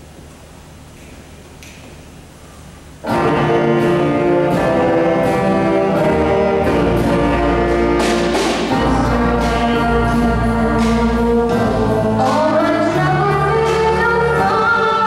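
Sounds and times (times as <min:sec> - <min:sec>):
bass and drums: 0:03.0 - 0:15.0
jazz band horns and saxophones: 0:03.0 - 0:15.0.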